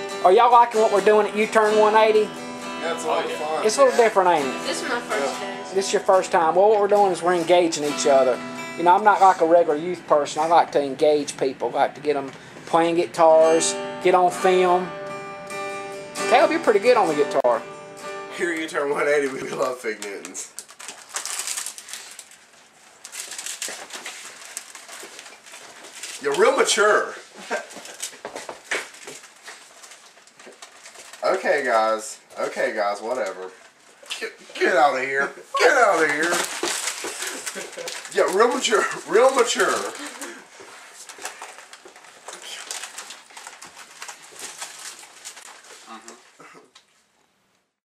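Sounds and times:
plastic wrapper crinkling: 0:18.5 - 0:34.3, 0:35.6 - 0:47.0.

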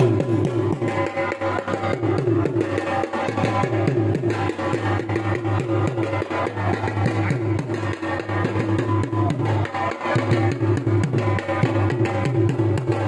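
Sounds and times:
dhol drumming: 0:00.0 - 0:13.0.

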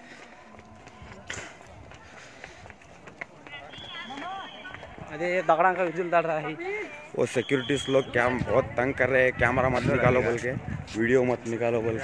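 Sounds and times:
indistinct voices of people: 0:00.0 - 0:12.0.

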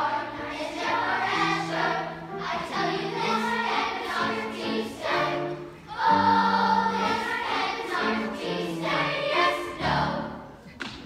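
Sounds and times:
choir singing slow song: 0:00.0 - 0:10.6.

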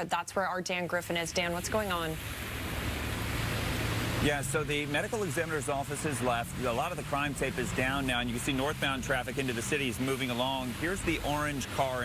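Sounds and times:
street traffic on wet pavement: 0:01.3 - 0:12.0.

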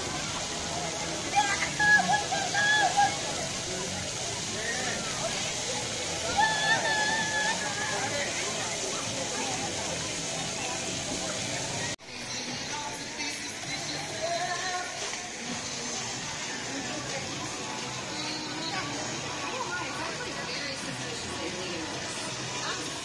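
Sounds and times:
fountain jets spraying water: 0:00.0 - 0:23.0
children shouting: 0:01.3 - 0:03.4, 0:06.1 - 0:08.6.

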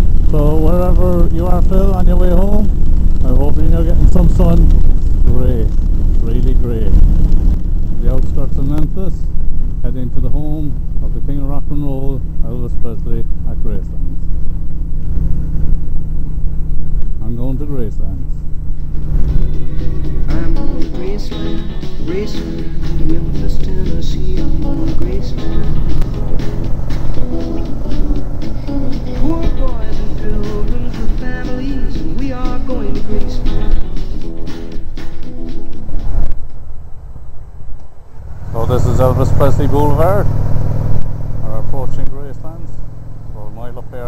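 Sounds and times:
motorcycle engine running: 0:00.0 - 0:37.2, 0:38.1 - 0:44.0
music playing: 0:18.8 - 0:36.6.

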